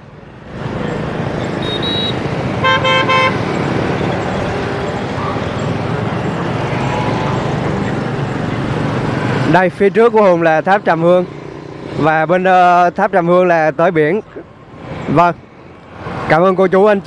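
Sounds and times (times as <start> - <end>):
road traffic noise: 0.0 - 17.0
high beep: 1.6 - 2.2
vehicle horn toots: 1.6 - 3.4.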